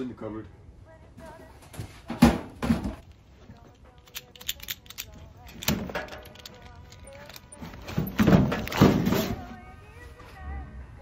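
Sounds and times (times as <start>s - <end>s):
bag clicks and rattles: 3.6s - 9.6s.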